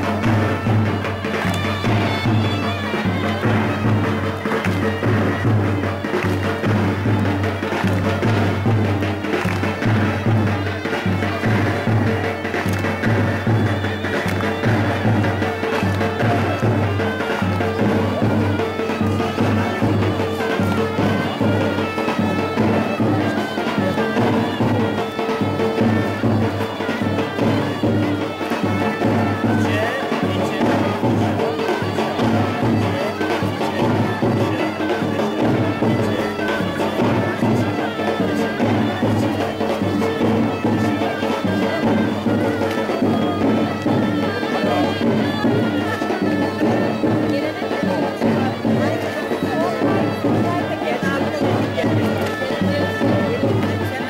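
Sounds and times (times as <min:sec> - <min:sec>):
pulsing drum beat: 0:00.0 - 0:54.0
shrill reed wind instrument: 0:00.0 - 0:54.0.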